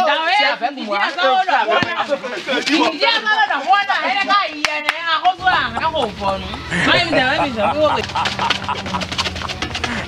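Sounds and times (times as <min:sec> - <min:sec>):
hand claps: 0:04.6 - 0:05.4, 0:08.0 - 0:10.0.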